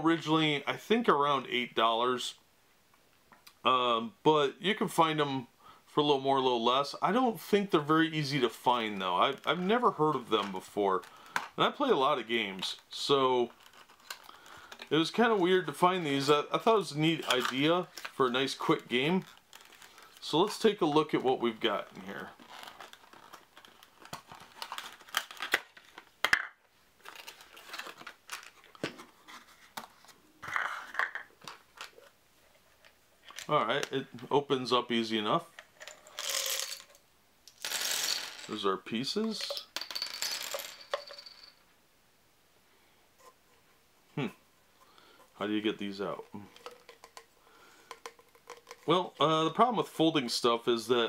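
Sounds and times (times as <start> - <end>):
cardboard and plastic crinkling: 13.4 - 14.9, 17.1 - 26.2, 27.0 - 32.1
clicks and taps: 46.6 - 48.9.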